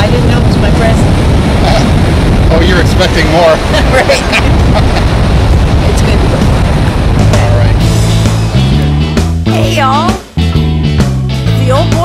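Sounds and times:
wind buffeting microphone: 0.0 - 10.3
surf: 0.0 - 12.0
background music with bass notes: 1.5 - 12.0.

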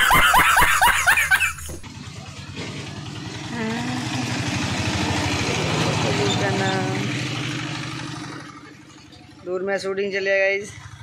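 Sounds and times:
vehicle engine passing by: 1.7 - 11.0.

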